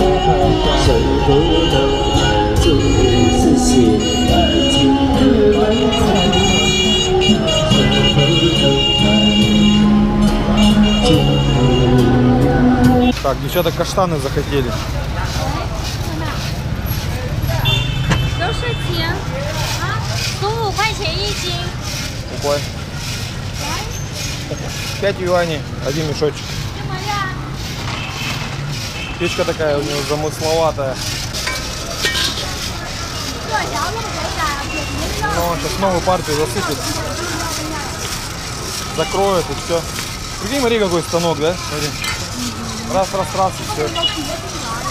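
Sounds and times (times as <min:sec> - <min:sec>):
scattered voices: 0:00.0 - 0:44.9
traffic rumble: 0:00.0 - 0:44.9.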